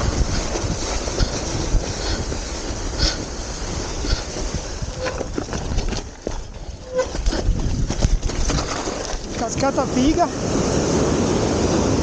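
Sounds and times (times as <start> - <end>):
bike rattling: 0.0 - 10.2
tyres crunching through snow: 0.0 - 12.0
short squeaks: 4.9 - 5.8, 6.7 - 7.6.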